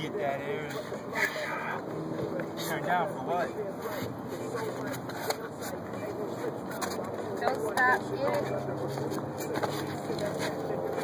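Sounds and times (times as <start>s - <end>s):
shoe scraping on concrete: 3.5s - 11.0s
shoes clicking on concrete: 3.8s - 11.0s.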